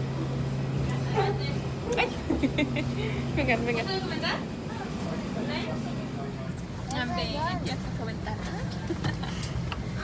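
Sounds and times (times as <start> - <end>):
faint passenger voices: 0.0 - 10.0.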